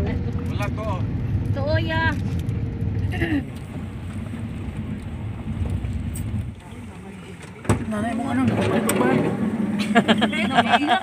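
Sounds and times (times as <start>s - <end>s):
people talking: 6.6s - 11.0s.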